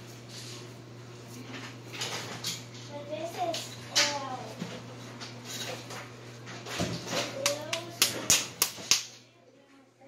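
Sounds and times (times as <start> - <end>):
meat slapped between palms: 7.4 - 9.1.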